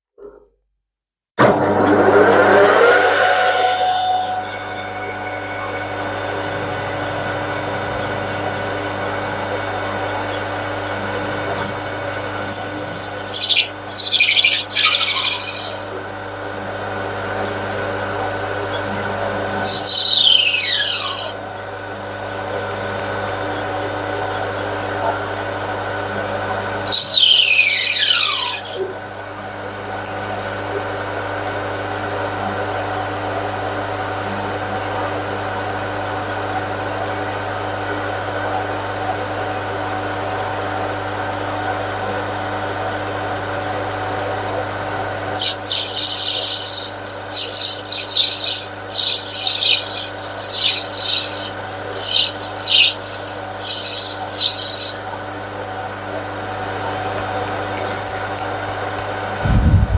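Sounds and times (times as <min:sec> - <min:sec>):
high squeals falling in pitch: 0:01.8 - 0:07.8, 0:12.5 - 0:15.9, 0:19.6 - 0:21.4, 0:26.9 - 0:28.8, 0:44.5 - 0:55.4
high warbling chirps: 0:01.8 - 0:09.5, 0:12.4 - 0:15.9, 0:19.6 - 0:21.4, 0:26.9 - 0:28.8, 0:44.5 - 0:58.4
metal lathe humming: 0:19.6 - 0:21.5, 0:26.9 - 0:28.8, 0:45.1 - 0:59.1.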